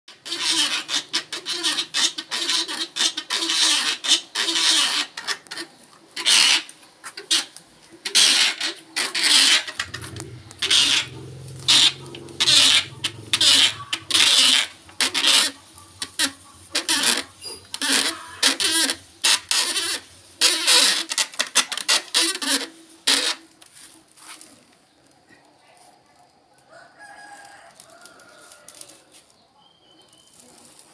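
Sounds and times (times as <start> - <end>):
hand-cranked cotton gin squeaking: 0.1 - 23.8.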